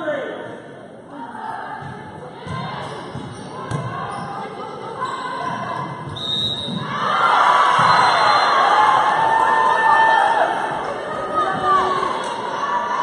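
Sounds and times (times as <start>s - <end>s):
people shouting and cheering: 4.9s - 13.0s.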